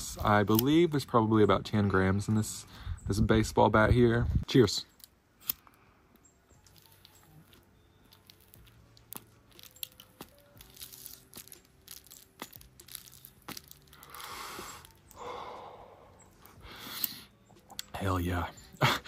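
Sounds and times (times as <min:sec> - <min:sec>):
paper crackling as joint is lit: 0:06.6 - 0:15.2.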